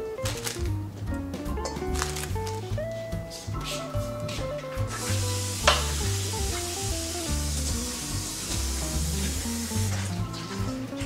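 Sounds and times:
background music: 0.0s - 11.0s
water running into metal sink: 4.8s - 10.6s.

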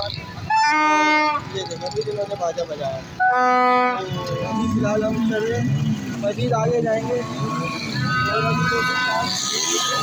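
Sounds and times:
voices of people: 0.0s - 10.0s.

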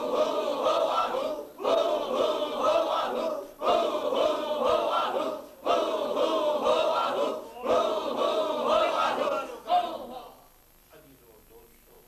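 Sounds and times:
men chanting in unison: 0.0s - 10.4s.

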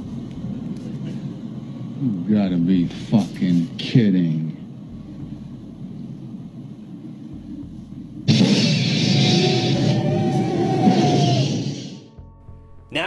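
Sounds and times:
flamethrower fire rushing: 0.0s - 12.1s
low rumble: 0.0s - 12.9s.

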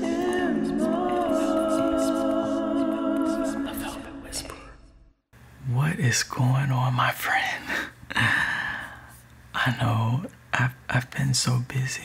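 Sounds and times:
person whispering softly: 3.7s - 4.8s, 6.5s - 7.8s, 10.9s - 12.0s.

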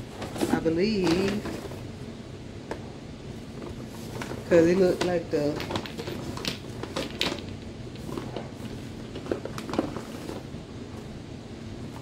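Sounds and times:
air conditioner hum: 0.0s - 12.0s.

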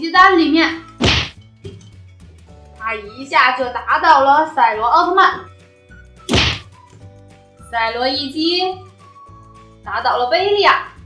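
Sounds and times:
punch hit whack: 1.0s - 1.4s, 6.3s - 6.7s.

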